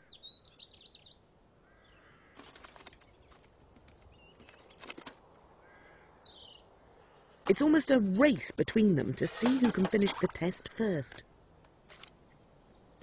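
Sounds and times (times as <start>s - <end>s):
faint bird calls: 0.0s - 3.5s, 4.1s - 7.4s
stones clattering in plastic tube: 9.3s - 10.3s.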